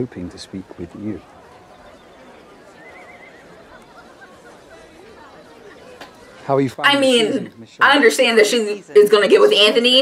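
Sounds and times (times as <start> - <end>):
horse whinnying: 2.8 - 3.5.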